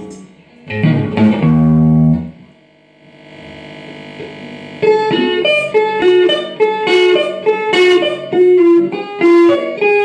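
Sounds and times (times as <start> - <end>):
amplifier hum: 0.0 - 10.0
electric guitar note ringing: 0.7 - 10.0.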